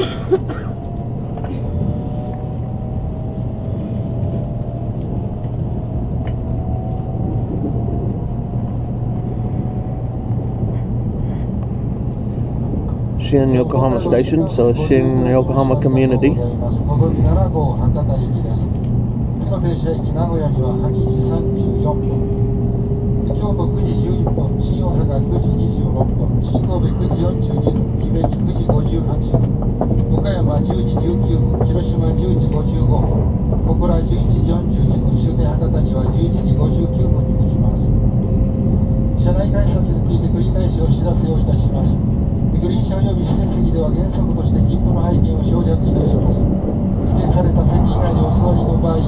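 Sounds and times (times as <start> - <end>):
train rumble with rising whine: 0.0 - 49.0.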